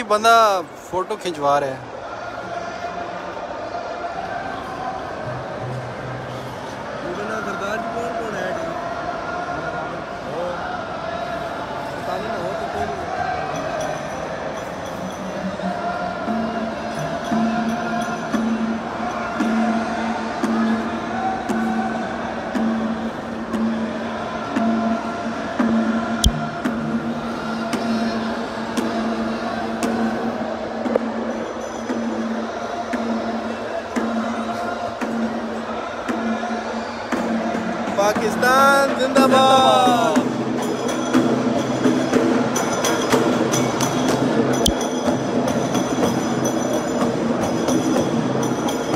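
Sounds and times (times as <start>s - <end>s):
crowd chatter: 0.0s - 48.9s
music with singing and drums: 14.6s - 48.9s.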